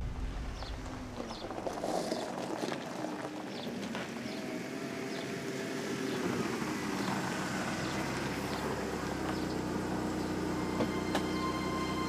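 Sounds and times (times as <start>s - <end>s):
car engine running: 4.3s - 12.0s.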